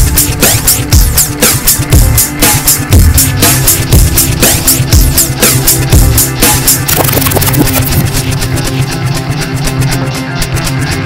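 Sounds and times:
psychedelic trance music: 0.0s - 11.0s.

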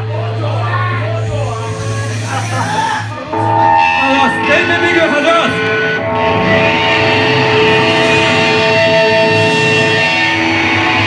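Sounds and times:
distorted electric guitars: 0.0s - 11.0s.

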